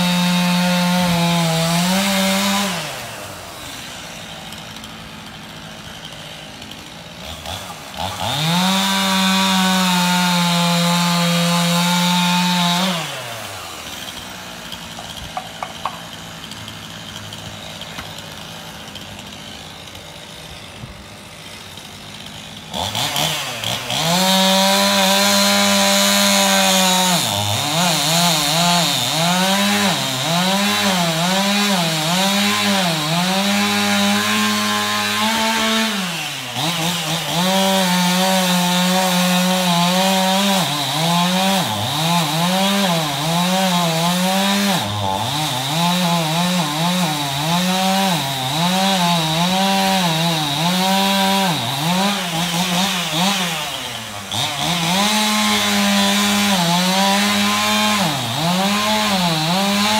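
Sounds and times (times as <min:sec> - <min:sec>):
chainsaw cutting wood: 0:00.0 - 0:59.9.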